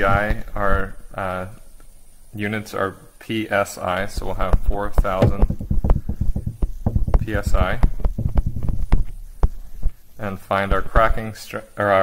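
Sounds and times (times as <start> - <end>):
stylus tapping on tablet: 5.2 - 7.3.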